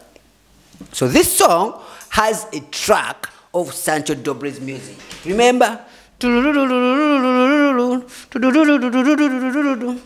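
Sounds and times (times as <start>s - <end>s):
man singing held note: 6.2s - 10.0s.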